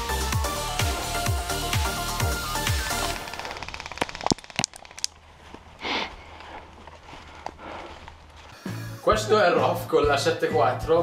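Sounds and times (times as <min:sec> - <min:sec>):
background music: 0:00.0 - 0:03.5, 0:08.6 - 0:11.0
airsoft gun rapid clicks: 0:03.2 - 0:05.2.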